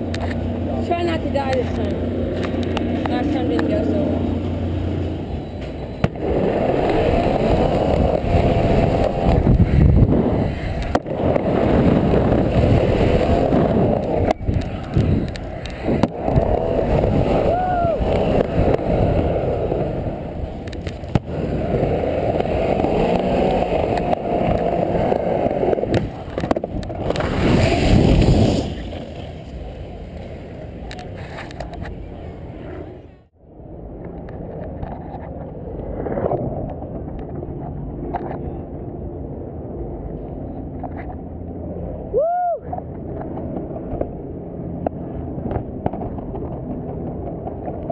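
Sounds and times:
skateboard wheels rolling on wood: 0:00.0 - 0:33.2, 0:33.9 - 0:38.5, 0:42.8 - 0:47.9
skateboard knocking and landing: 0:05.9 - 0:32.6.

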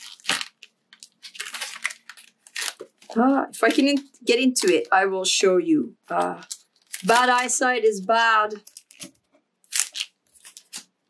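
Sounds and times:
cellophane crinkling: 0:00.0 - 0:05.0, 0:06.1 - 0:11.0.

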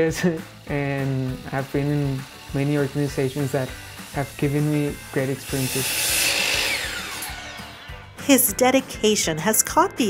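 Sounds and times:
miter saw cutting wood: 0:00.0 - 0:08.5
saw motor winding down whine: 0:00.5 - 0:08.2.

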